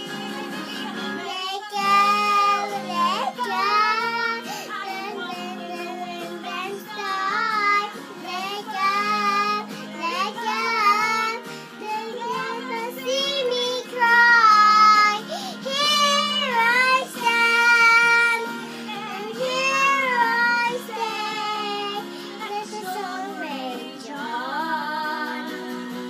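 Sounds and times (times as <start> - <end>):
girl singing: 0.0 - 25.8.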